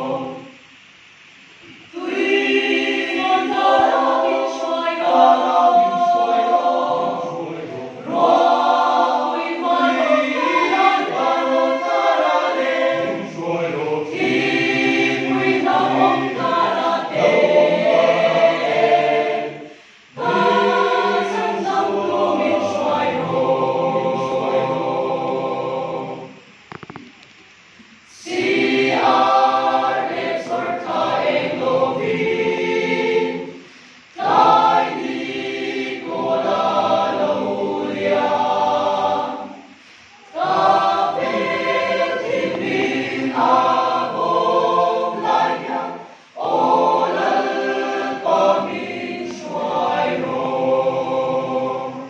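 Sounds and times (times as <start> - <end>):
mixed choir singing unaccompanied: 0.0 - 0.9, 1.7 - 26.9, 28.1 - 52.0.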